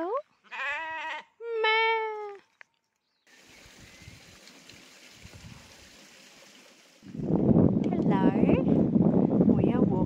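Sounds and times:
faint rushing stream: 0:03.3 - 0:07.2.

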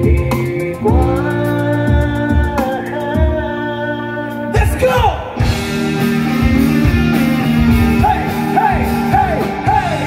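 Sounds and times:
rock band playing: 0:00.0 - 0:03.6, 0:04.2 - 0:10.0.

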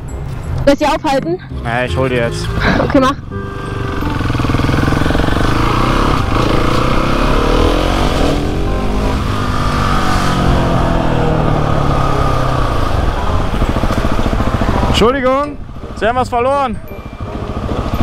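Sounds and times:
motorcycle engine accelerating: 0:02.8 - 0:18.0.

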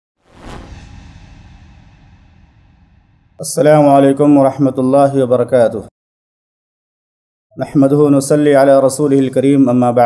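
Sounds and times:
whoosh with deep tail: 0:00.2 - 0:03.4.

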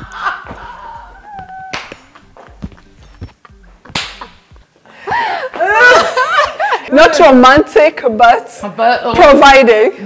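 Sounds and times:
women laughing: 0:00.0 - 0:02.3, 0:05.0 - 0:06.9
sharp smacks: 0:03.9 - 0:04.4.

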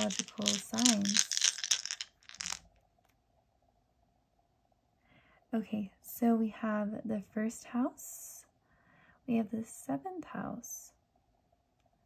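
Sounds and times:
dice clattering on tabletop: 0:00.0 - 0:02.7
dice rattling in hands: 0:00.0 - 0:02.7.

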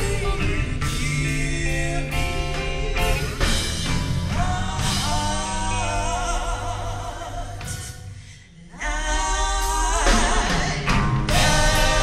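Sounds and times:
drum and cymbal hits: 0:00.0 - 0:06.1, 0:09.4 - 0:12.0
live band playing: 0:00.0 - 0:08.2, 0:09.2 - 0:12.0
female vocal group singing gospel: 0:04.3 - 0:08.0, 0:08.6 - 0:12.0.

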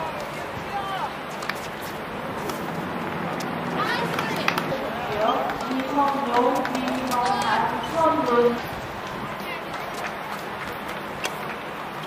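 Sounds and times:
voices talking: 0:02.0 - 0:10.3.

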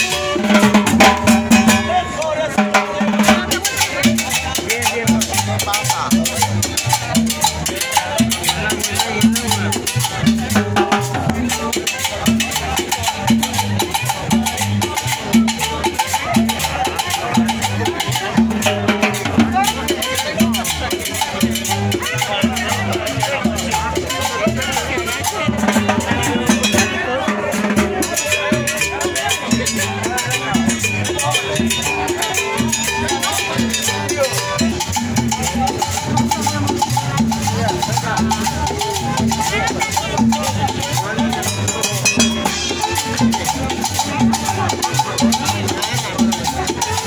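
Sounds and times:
conga drum: 0:00.0 - 0:47.0
latin dance band playing: 0:00.0 - 0:47.0.

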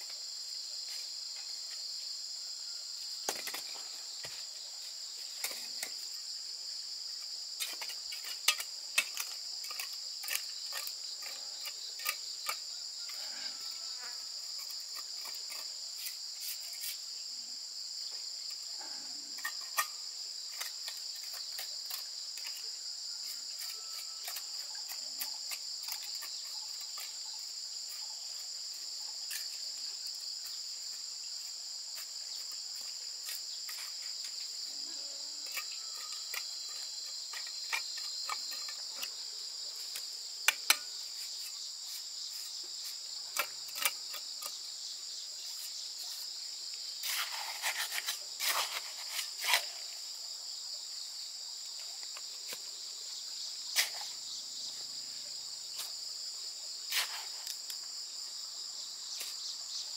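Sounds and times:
high-pitched insect chorus: 0:00.0 - 0:59.9.

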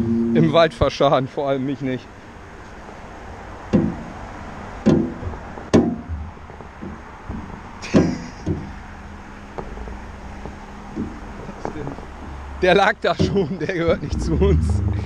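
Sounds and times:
low hum of platform drive: 0:01.6 - 0:15.0
knocks and thumps on metal basket: 0:03.6 - 0:04.2, 0:04.8 - 0:12.4, 0:13.0 - 0:14.9.

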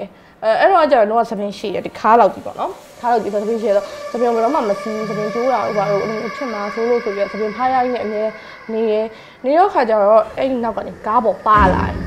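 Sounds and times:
woman speaking: 0:00.4 - 0:12.0
steady hiss: 0:01.3 - 0:12.0.

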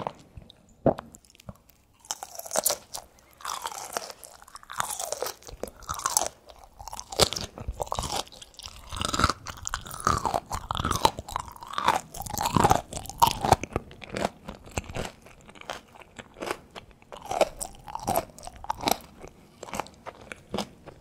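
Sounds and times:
biting crisp food: 0:00.0 - 0:21.0
crunchy chewing: 0:00.0 - 0:21.0.

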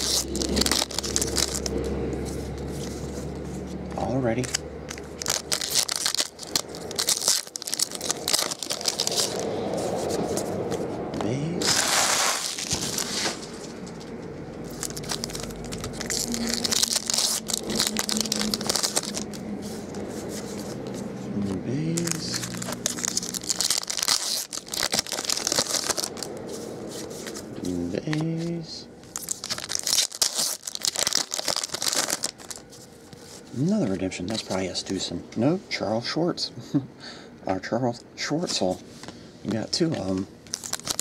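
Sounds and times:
foil wrappers crinkling and tearing: 0:00.0 - 0:02.0, 0:04.0 - 0:09.5, 0:11.6 - 0:33.5, 0:40.5 - 0:41.0
cards riffled and sliding: 0:00.0 - 0:34.6.

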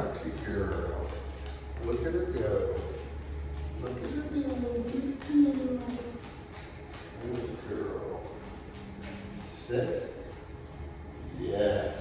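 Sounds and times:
dog claws on hard floor: 0:00.0 - 0:10.1.

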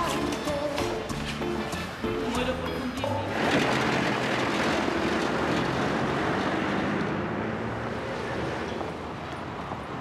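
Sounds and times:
traffic rushing: 0:03.0 - 0:10.0.

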